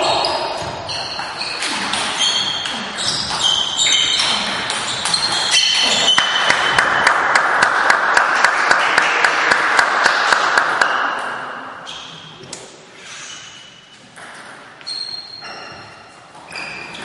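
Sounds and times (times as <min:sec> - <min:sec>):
sports shoes squeaking on floor: 0:00.0 - 0:07.0, 0:11.8 - 0:12.4, 0:13.0 - 0:17.0.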